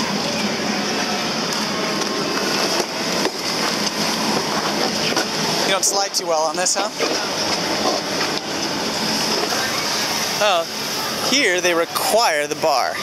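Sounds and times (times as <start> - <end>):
chairlift machinery running: 0.0 - 11.7
constant high hiss: 0.0 - 13.0.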